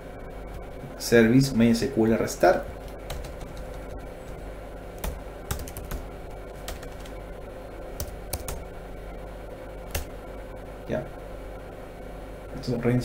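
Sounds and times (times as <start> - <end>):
computer keyboard keys clicking: 2.8 - 3.8, 5.0 - 6.0, 6.6 - 7.2, 8.0 - 8.7, 9.9 - 10.1.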